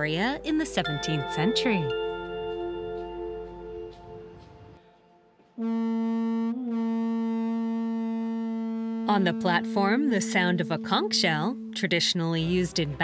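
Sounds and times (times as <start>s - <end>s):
background music: 0.0s - 5.8s, 9.1s - 13.0s
conch shell trumpet note: 5.6s - 13.0s.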